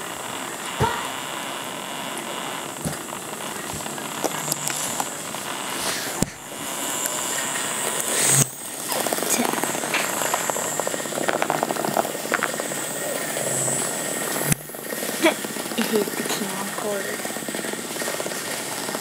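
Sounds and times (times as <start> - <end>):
sharp clicks: 0.0 - 14.9.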